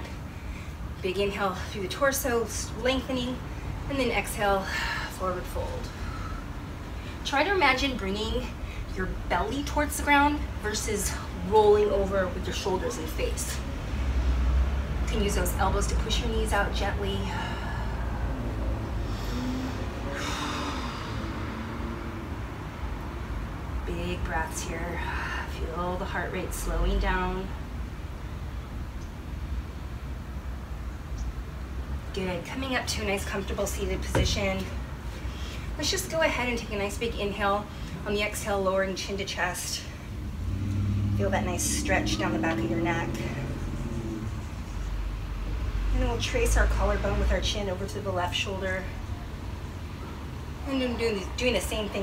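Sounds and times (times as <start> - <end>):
low steady rumble: 0.0 - 52.0
person breathing out: 19.0 - 21.5.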